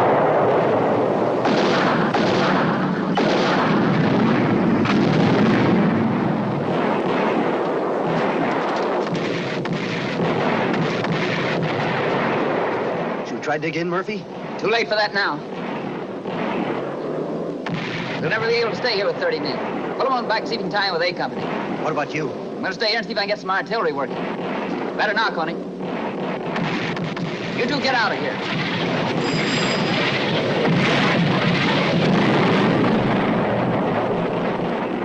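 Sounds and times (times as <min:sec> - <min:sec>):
rumble of shellfire and explosions: 0:00.0 - 0:35.0.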